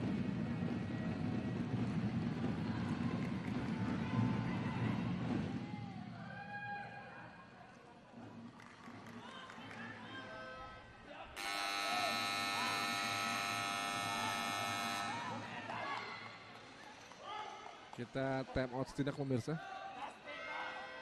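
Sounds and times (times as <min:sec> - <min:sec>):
buzzer long steady tone: 0:11.4 - 0:15.7.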